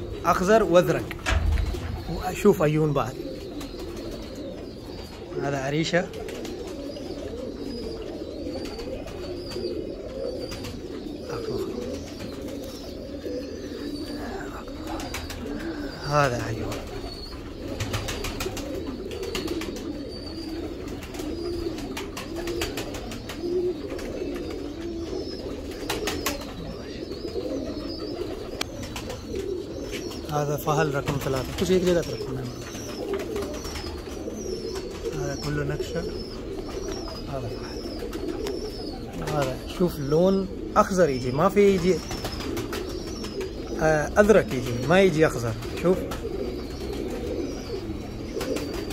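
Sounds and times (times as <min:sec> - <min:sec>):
pigeons cooing: 0:00.0 - 0:48.9
man speaking: 0:00.2 - 0:03.3, 0:35.1 - 0:36.2, 0:43.8 - 0:46.1.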